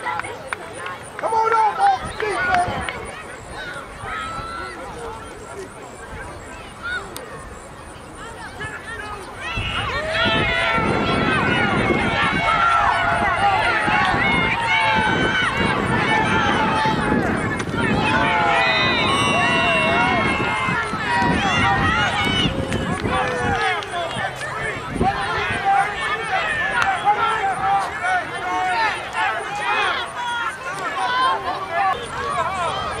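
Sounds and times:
spectators yelling and cheering: 0:00.0 - 0:33.0.

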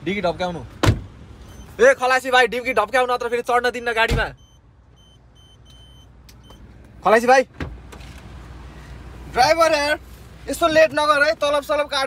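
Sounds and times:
car warning chime beeps: 0:01.4 - 0:06.8.

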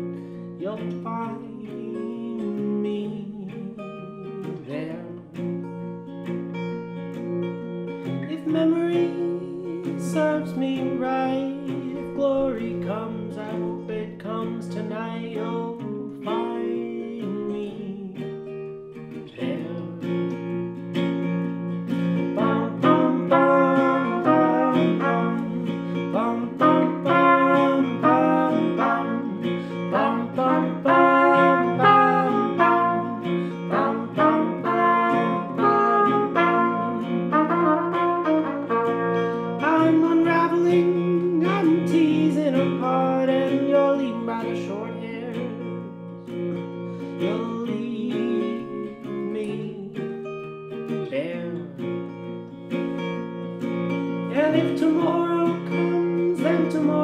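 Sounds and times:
strummed acoustic guitar: 0:00.0 - 0:57.0
trumpet melody: 0:22.0 - 0:42.9, 0:54.2 - 0:57.0.

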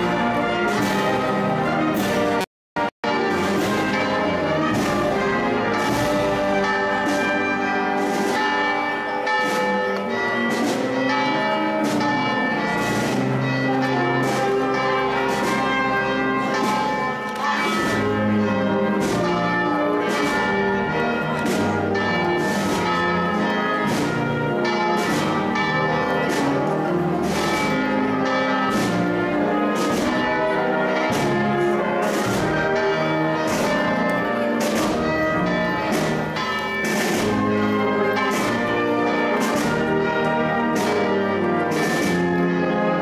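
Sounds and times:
church bells ringing: 0:00.0 - 0:43.0.

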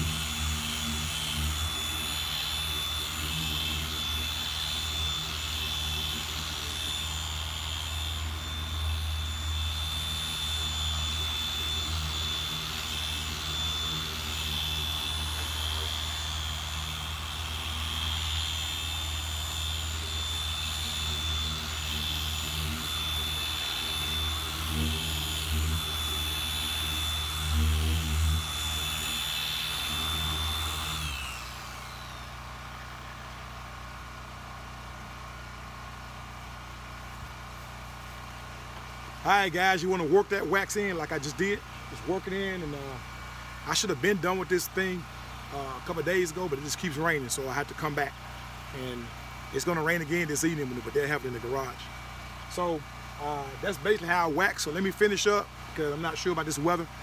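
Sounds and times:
orbital polisher whining: 0:00.0 - 0:33.6, 0:36.8 - 0:57.0
polisher spinning down: 0:00.0 - 0:34.4, 0:36.7 - 0:57.0.

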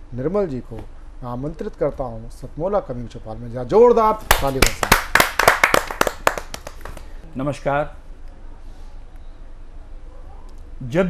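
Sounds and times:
small audience clapping: 0:04.3 - 0:07.2.

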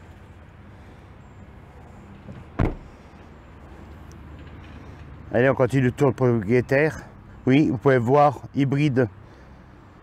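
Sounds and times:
car tailgate slamming: 0:02.3 - 0:02.9.

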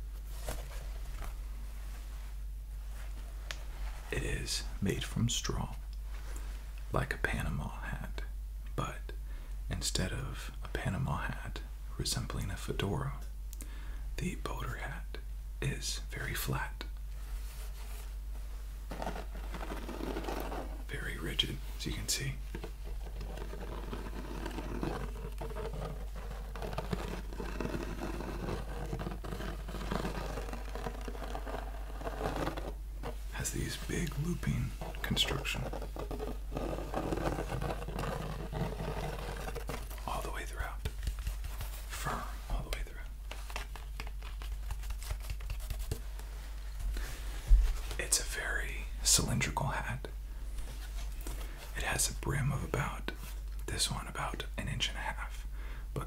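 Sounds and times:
man whispering: 0:04.1 - 0:05.9, 0:06.8 - 0:13.3, 0:14.2 - 0:16.9, 0:20.8 - 0:22.5, 0:33.3 - 0:35.8, 0:39.9 - 0:41.0, 0:41.9 - 0:43.2, 0:48.0 - 0:50.2, 0:51.7 - 0:56.0
fingertips scratching straw hat: 0:18.9 - 0:46.0.

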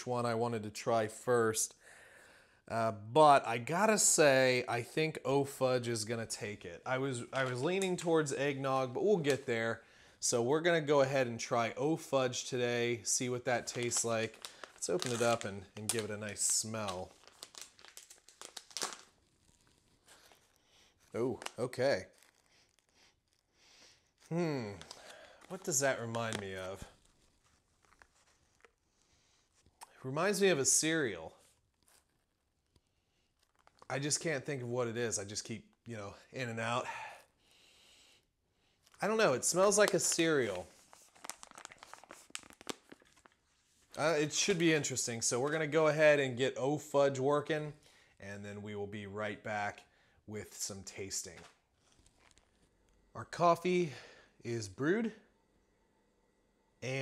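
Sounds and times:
foil pouch crinkling: 0:13.1 - 0:28.8, 0:31.4 - 0:33.9, 0:38.8 - 0:44.0, 0:51.8 - 0:52.7.

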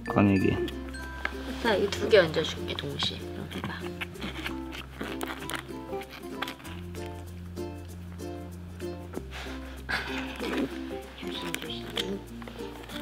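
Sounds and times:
repeated plucked notes: 0:00.0 - 0:04.7.

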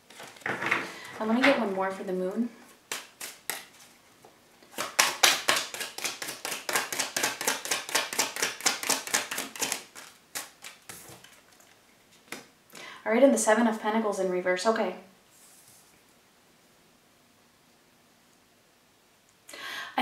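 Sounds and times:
cards being shuffled: 0:02.9 - 0:03.9, 0:04.7 - 0:12.5.

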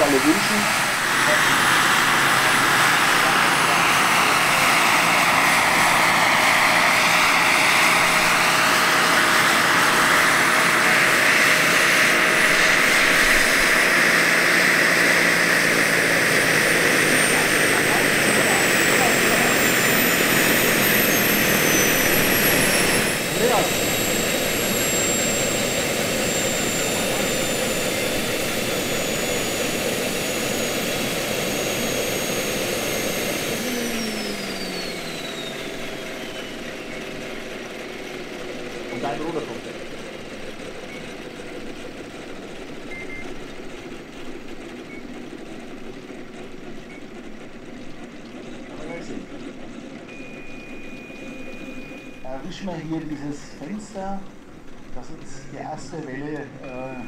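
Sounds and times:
helicopter rotors: 0:00.0 - 0:57.0
model helicopter turbine whining: 0:00.0 - 0:57.0.

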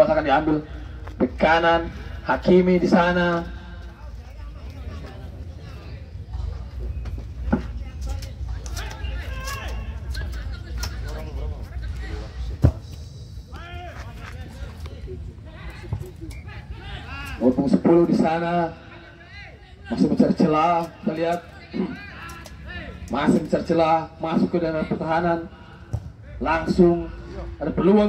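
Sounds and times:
spectators chattering and shouting: 0:03.1 - 0:23.2
football kicked thump: 0:25.9 - 0:26.1.

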